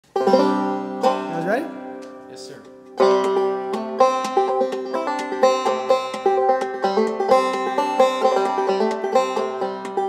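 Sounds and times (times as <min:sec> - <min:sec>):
banjo chord ringing: 0:00.0 - 0:10.0
bluegrass string band: 0:00.1 - 0:10.0.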